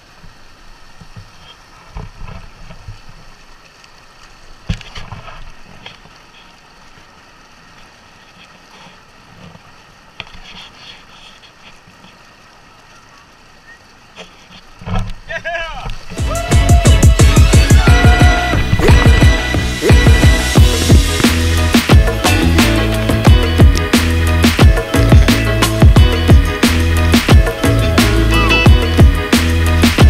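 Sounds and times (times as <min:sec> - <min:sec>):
electronic dance music: 0:16.2 - 0:30.0.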